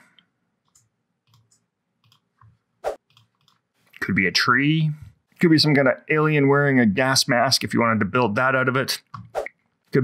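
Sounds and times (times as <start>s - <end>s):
computer mouse clicks: 0.1s - 3.6s.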